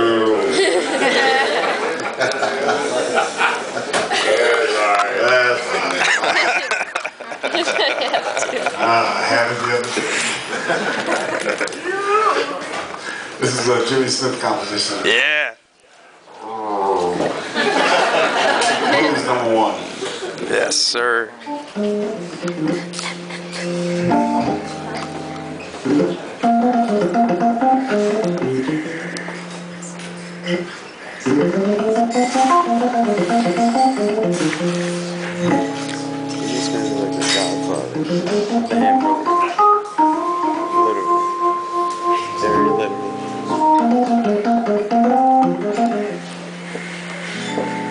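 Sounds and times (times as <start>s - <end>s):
hammond organ playing: 21.5s - 47.9s.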